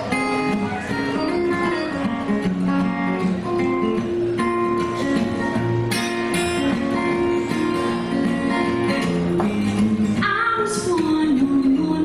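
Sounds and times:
acoustic guitars playing: 0.0 - 12.0.

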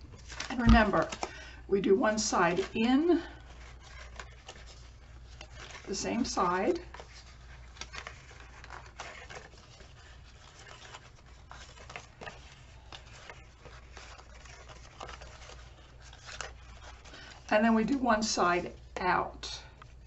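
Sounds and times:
paper rustling and crinkling: 0.0 - 1.5, 2.4 - 19.0.

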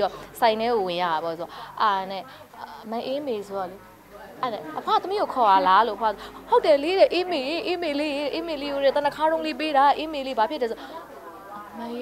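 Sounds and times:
woman speaking animatedly: 4.4 - 11.0.

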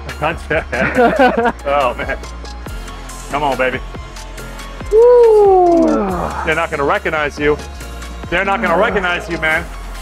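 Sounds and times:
man groaning with effort: 4.9 - 6.5.

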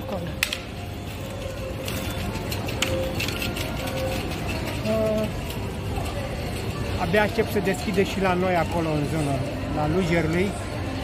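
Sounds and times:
in-store background music: 0.0 - 11.0
murmur of shoppers: 0.0 - 11.0.

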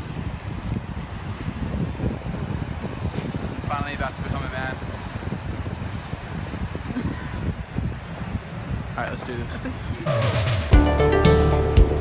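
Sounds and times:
surf washing: 0.0 - 10.7
wind buffeting microphone: 0.0 - 10.7.

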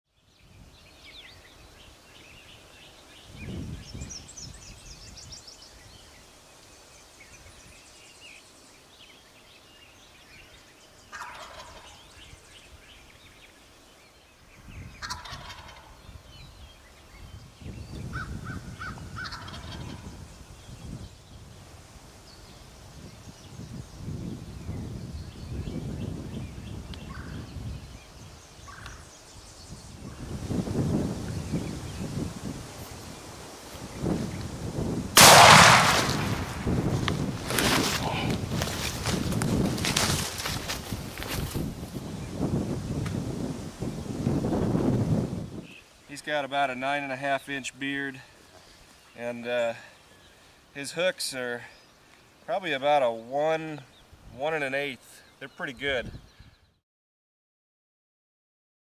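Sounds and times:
songbird chirping: 0.1 - 43.0, 45.5 - 56.8
turkey gobbling: 11.1 - 12.0, 15.0 - 16.0, 19.2 - 20.0.

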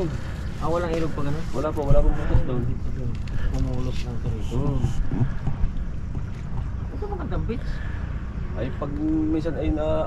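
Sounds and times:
wind buffeting microphone: 0.0 - 8.6.

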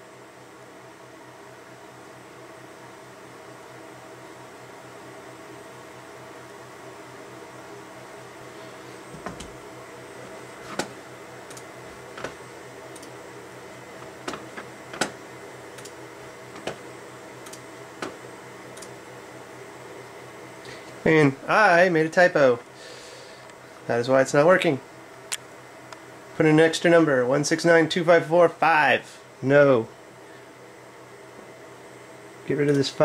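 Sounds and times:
low pulsing hum: 2.7 - 33.0.

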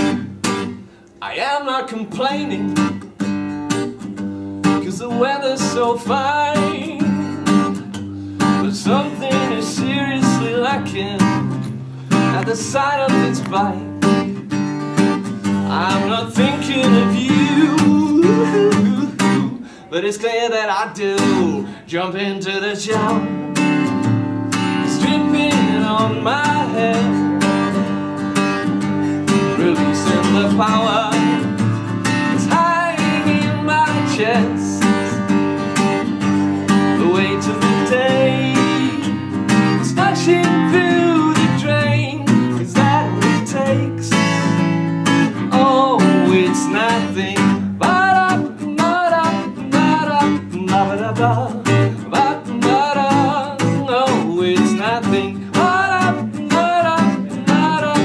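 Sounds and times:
acoustic guitar strumming: 0.0 - 58.0
man singing: 1.2 - 3.3, 4.6 - 7.8, 8.4 - 27.9, 29.1 - 58.0.

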